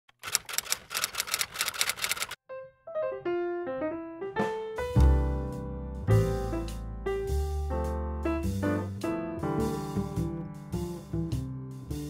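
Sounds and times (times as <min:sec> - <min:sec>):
typewriter key clicks: 0:00.1 - 0:02.4.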